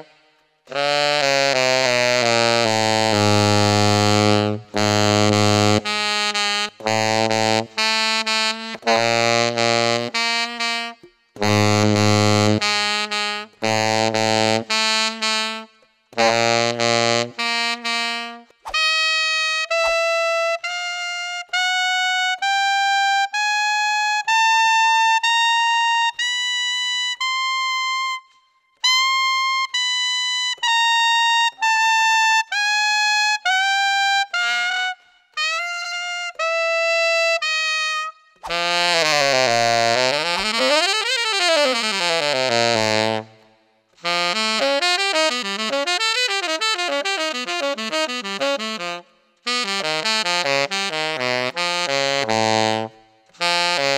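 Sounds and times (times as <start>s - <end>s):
tenor saxophone playing: 0.0s - 53.9s.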